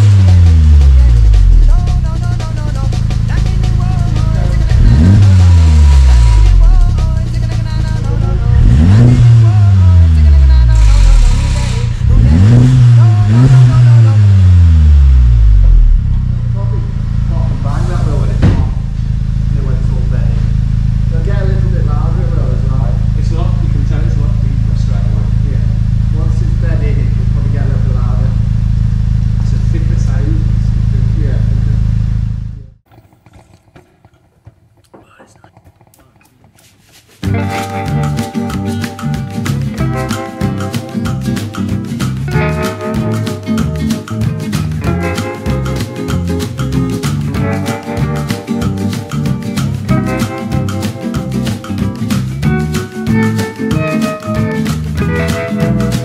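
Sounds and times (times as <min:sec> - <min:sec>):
car engine revving and idling: 0:00.0 - 0:32.9
sharp exhaust crack: 0:00.0 - 0:56.0.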